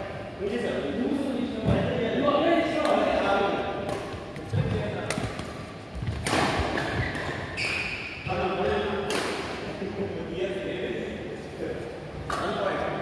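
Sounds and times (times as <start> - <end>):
racket striking shuttlecock: 5.0 - 7.8, 9.1 - 9.6.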